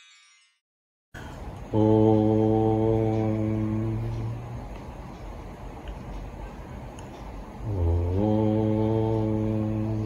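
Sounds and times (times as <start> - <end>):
man chanting low om: 1.6 - 4.7, 7.6 - 10.0.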